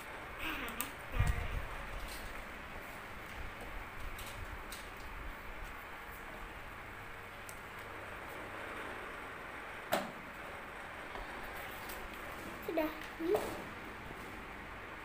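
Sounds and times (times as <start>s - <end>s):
low room noise: 0.0s - 15.0s.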